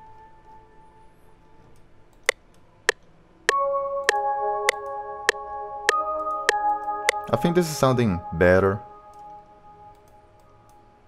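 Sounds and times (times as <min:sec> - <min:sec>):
synth melody: 0:03.5 - 0:11.0.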